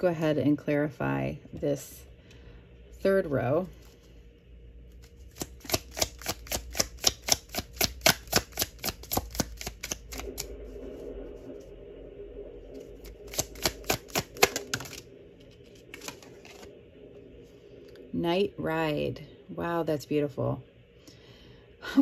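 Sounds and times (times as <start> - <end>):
cards being shuffled: 5.0 - 10.5, 13.0 - 16.7.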